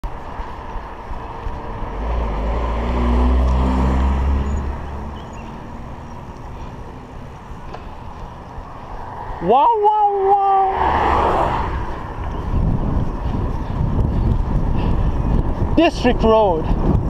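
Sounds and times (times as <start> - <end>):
wind noise on microphone: 0.0 - 17.0
car passing by: 1.2 - 12.7.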